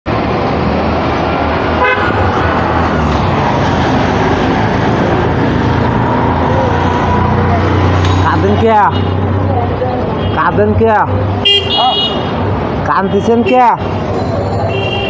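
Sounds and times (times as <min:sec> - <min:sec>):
busy road traffic: 0:00.0 - 0:15.0
vehicle horns: 0:01.8 - 0:02.3, 0:08.3 - 0:09.3, 0:10.1 - 0:10.7, 0:11.4 - 0:12.4, 0:14.7 - 0:15.0.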